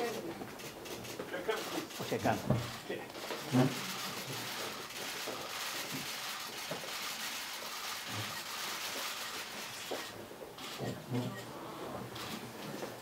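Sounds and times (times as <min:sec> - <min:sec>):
camera shutters clicking rapidly: 0:00.0 - 0:11.0, 0:12.2 - 0:12.5.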